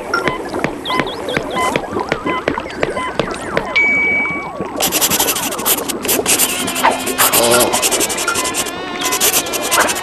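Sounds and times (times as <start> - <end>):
warbling tones: 0.0 - 10.0
electronic bleeps: 0.1 - 10.0.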